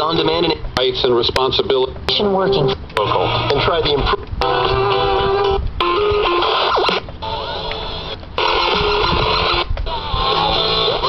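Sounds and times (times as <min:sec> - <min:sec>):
broadcast music and voice: 0:00.0 - 0:04.2
radio being tuned: 0:02.2 - 0:04.2.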